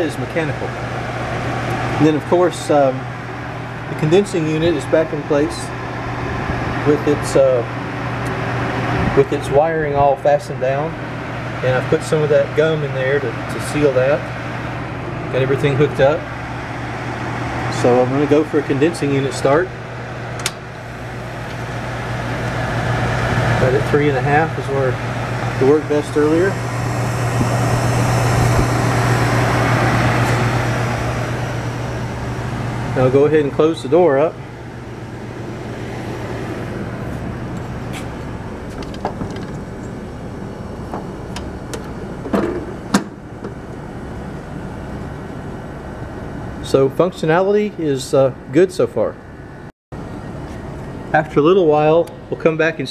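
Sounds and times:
compressor humming: 0.0s - 52.9s
fan whirring: 0.0s - 52.9s.

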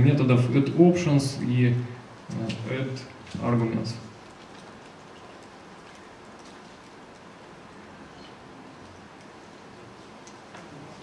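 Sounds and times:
low hiss: 0.0s - 11.0s.

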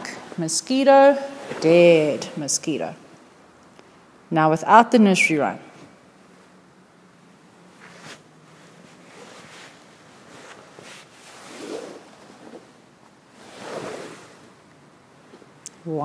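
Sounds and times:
fabric rustling against microphone: 0.0s - 2.6s, 7.5s - 15.6s.

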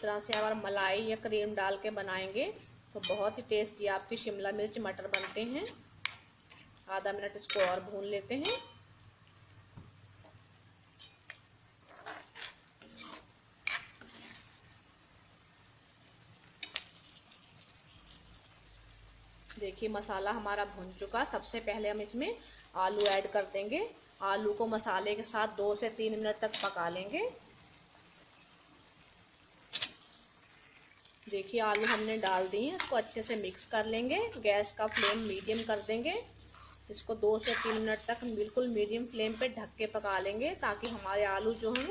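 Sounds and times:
faint sizzle: 0.0s - 41.9s
faint steady hiss: 0.0s - 41.9s
spoon scraping and clinking pan: 2.5s - 3.4s, 5.1s - 6.6s, 7.4s - 8.8s, 11.0s - 11.4s, 12.0s - 14.5s, 23.0s - 23.4s, 31.7s - 41.9s.

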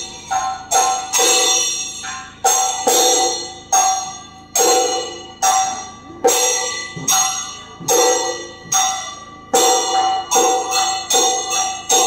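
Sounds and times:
bell-metal strokes ringing: 0.0s - 12.0s.

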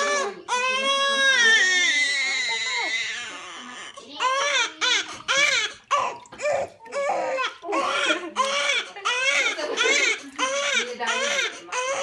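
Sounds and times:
newborn baby crying: 0.0s - 12.0s.

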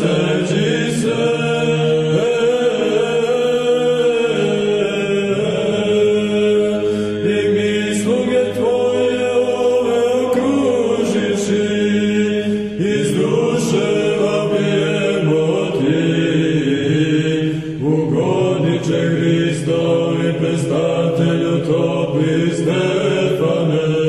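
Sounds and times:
choir chanting: 0.0s - 24.0s.

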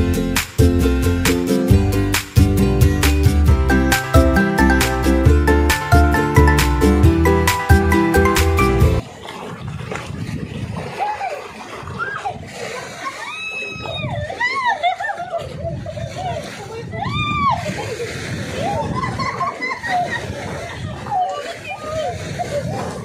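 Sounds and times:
music: 0.0s - 9.0s
sea water sloshing and splashing: 9.0s - 23.0s.

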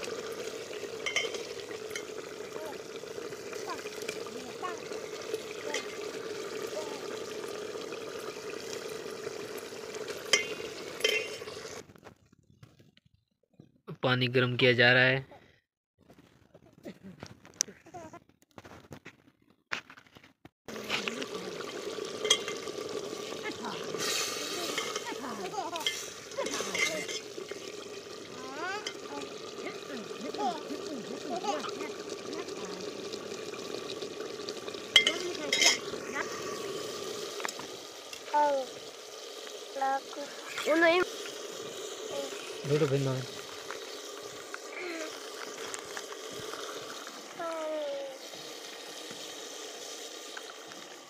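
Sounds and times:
ladle stirring: 0.0s - 11.8s, 20.7s - 37.8s
curry bubbling in a pot: 0.0s - 11.9s, 20.7s - 51.0s.

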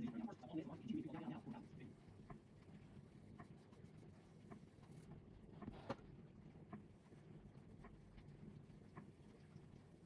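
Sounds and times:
faint soft ticks: 7.7s - 9.9s.

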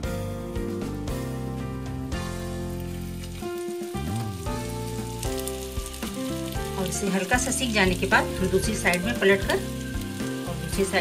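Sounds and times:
instrumental background music: 0.0s - 11.0s
food sizzling in a pan: 2.2s - 11.0s.

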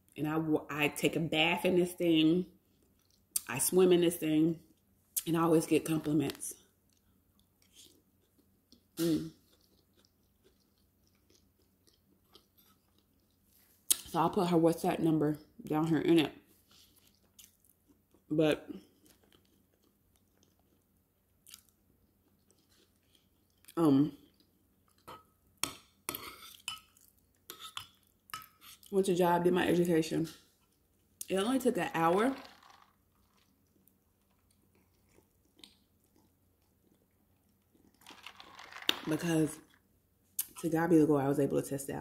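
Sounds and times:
chewing food: 2.6s - 3.5s, 6.6s - 14.1s, 16.5s - 28.9s, 33.1s - 38.6s.

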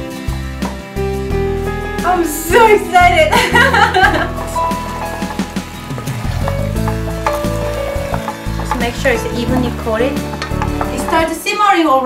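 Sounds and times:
background music with held notes: 0.0s - 12.0s
sauce sizzling: 3.2s - 11.4s
wooden spoon stirring in pot: 4.3s - 11.4s.

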